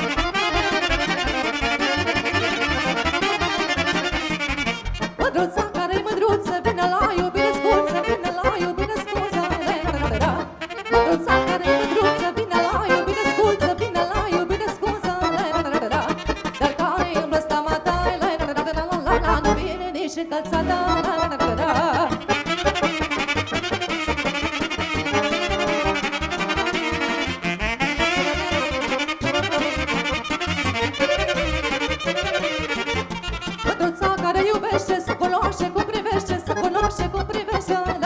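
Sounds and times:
folk band dance tune: 0:00.0 - 0:38.0
woman singing: 0:05.2 - 0:22.6, 0:33.6 - 0:38.0.

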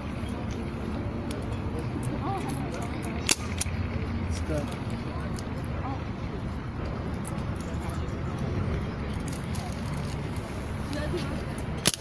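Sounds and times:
background chatter: 0:00.0 - 0:12.0
steady outdoor noise: 0:00.0 - 0:12.0.

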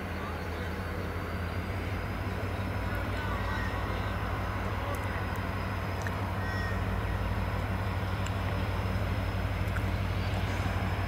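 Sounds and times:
diesel locomotive engine rumble: 0:00.0 - 0:11.0.

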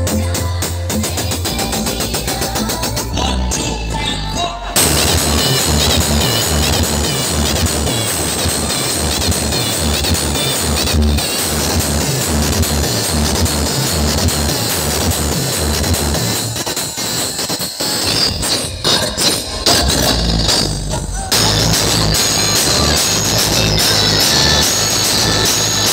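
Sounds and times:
electronic dance music: 0:00.0 - 0:25.9.

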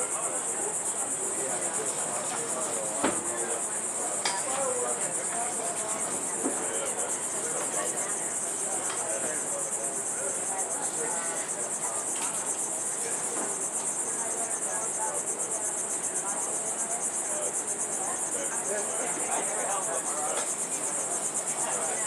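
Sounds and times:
insects trilling: 0:00.0 - 0:22.0.

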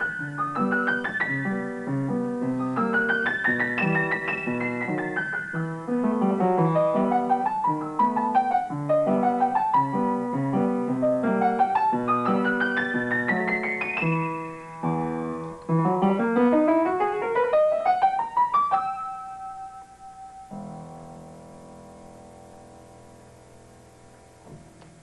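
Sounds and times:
piano played with both hands: 0:00.0 - 0:25.0.

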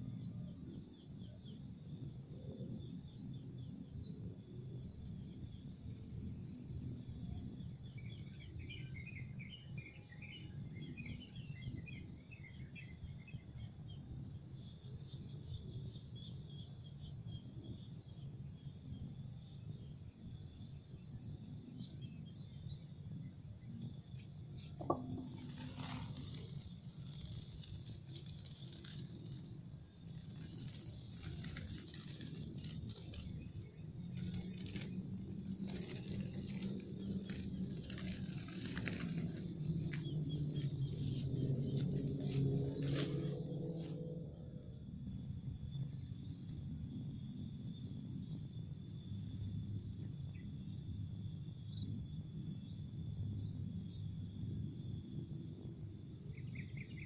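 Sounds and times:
insects trilling: 0:00.0 - 0:57.0.

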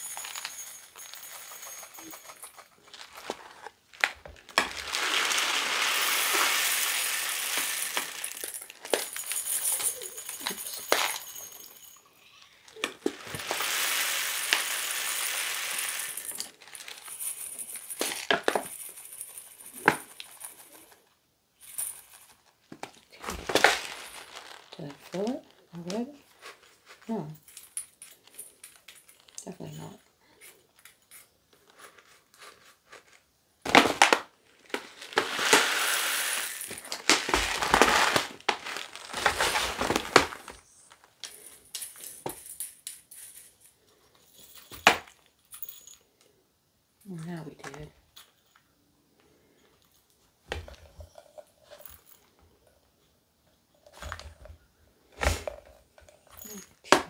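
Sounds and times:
plastic bag crinkling: 0:00.0 - 0:11.4, 0:12.7 - 0:18.6, 0:21.8 - 0:27.2, 0:28.1 - 0:29.9, 0:31.7 - 0:42.1
plastic pellets rattling and pouring: 0:00.0 - 0:11.7, 0:12.8 - 0:20.9, 0:21.6 - 0:27.1, 0:31.8 - 0:42.1.

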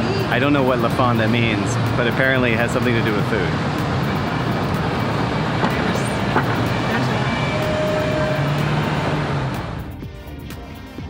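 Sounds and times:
car driving past: 0:01.6 - 0:10.0.

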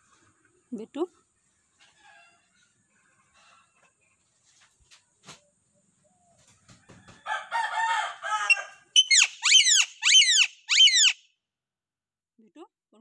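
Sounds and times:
parakeet screeches: 0:09.0 - 0:11.2
parakeet warbling call: 0:09.0 - 0:11.2.

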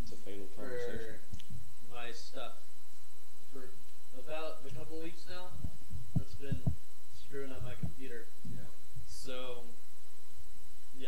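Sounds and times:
dull low thumps: 0:04.7 - 0:09.2.

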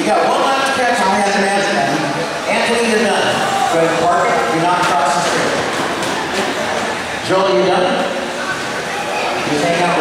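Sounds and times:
man announcing: 0:00.0 - 0:05.6, 0:07.2 - 0:08.2, 0:09.4 - 0:10.0
indoor hall din: 0:00.0 - 0:10.0.

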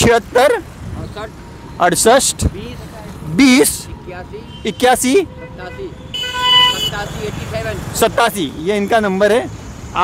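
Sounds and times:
passing street traffic: 0:00.0 - 0:10.0
vehicle horn honking: 0:04.4 - 0:07.5.

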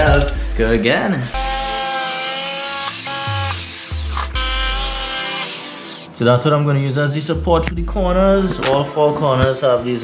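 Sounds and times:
electric jigsaw cutting wood: 0:01.4 - 0:06.1
electronic music: 0:01.4 - 0:06.1.

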